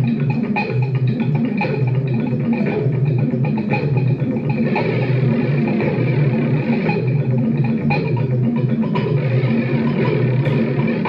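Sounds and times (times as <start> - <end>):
electronic drone through amplifier: 0.0 - 11.0.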